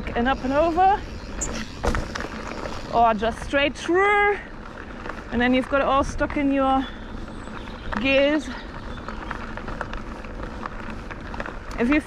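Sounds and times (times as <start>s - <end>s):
bike clicks and rattles: 0.0s - 12.0s
bike tyres rolling on dirt: 0.0s - 12.0s.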